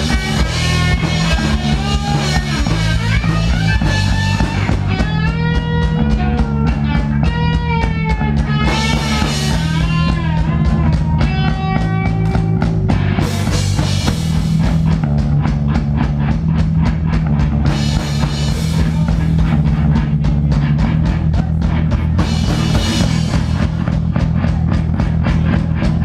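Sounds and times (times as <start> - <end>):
live rock band playing: 0.0 - 26.0.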